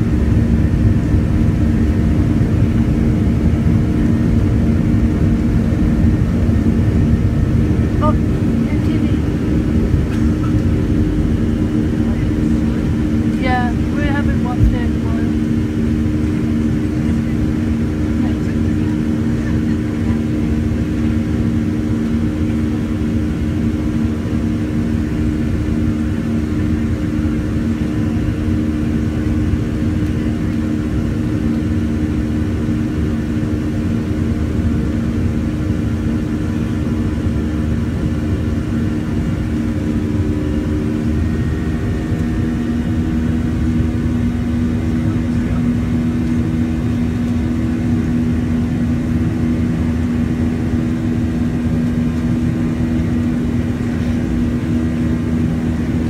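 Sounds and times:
jet engines droning in cabin: 0:00.0 - 0:56.0.

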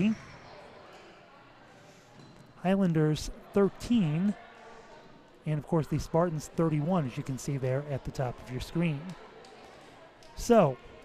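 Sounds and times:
gymnasium room ambience: 0:00.0 - 0:11.0.

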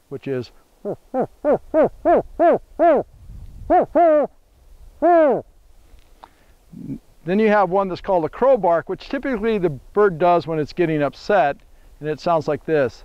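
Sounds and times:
man imitating owl hoots: 0:00.8 - 0:04.4, 0:05.0 - 0:05.5, 0:06.7 - 0:07.0.

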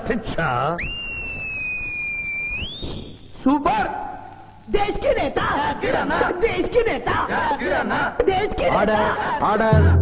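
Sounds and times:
man's shrill finger whistle: 0:00.8 - 0:03.2.

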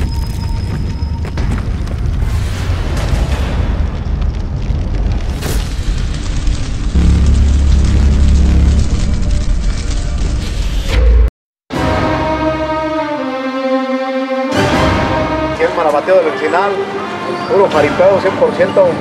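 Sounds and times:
fire-like crackling: 0:00.0 - 0:10.8
deep rumble: 0:01.0 - 0:11.3
low boom: 0:02.2 - 0:11.3.

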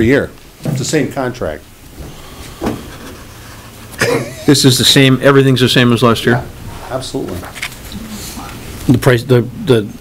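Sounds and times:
steady microphone hiss: 0:00.0 - 0:10.0.

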